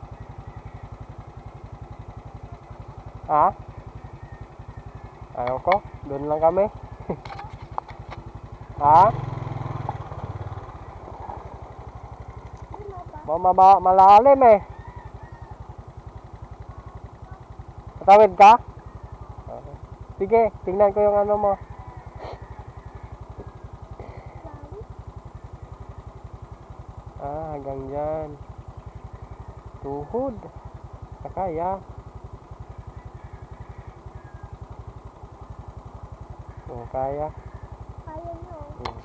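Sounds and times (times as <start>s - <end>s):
motorcycle engine idling: 0.0s - 39.0s.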